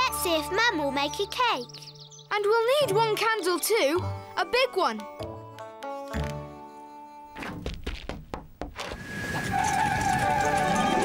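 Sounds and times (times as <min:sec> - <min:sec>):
background music: 0:00.0 - 0:07.6, 0:09.0 - 0:11.0
windmill sails turning: 0:08.8 - 0:11.0.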